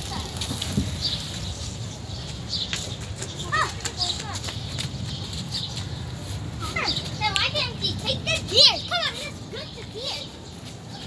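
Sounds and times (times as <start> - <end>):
high calls and cries: 0.0 - 11.0
children's voices at play: 3.0 - 11.0.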